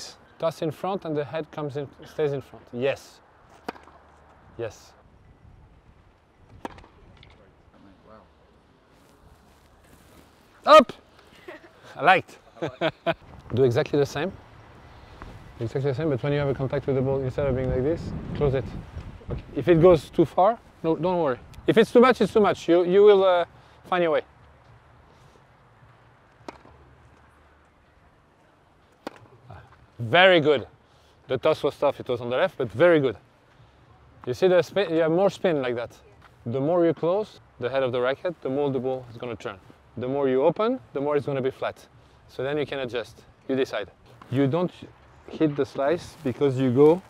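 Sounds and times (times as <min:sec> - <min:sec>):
faint outdoor background: 0:00.0 - 0:47.0
tennis ball bouncing on clay: 0:03.5 - 0:04.3, 0:06.6 - 0:07.3, 0:25.8 - 0:27.3, 0:28.9 - 0:29.8
tennis racket hitting ball: 0:03.6 - 0:04.0, 0:26.4 - 0:26.8, 0:29.0 - 0:29.4.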